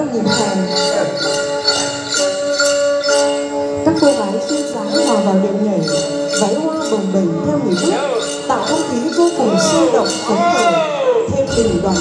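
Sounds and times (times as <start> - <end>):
jingling beat: 0.0 - 12.0.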